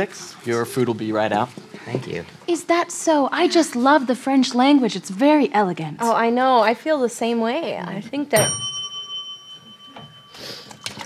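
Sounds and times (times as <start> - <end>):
high bell ding: 8.4 - 11.0.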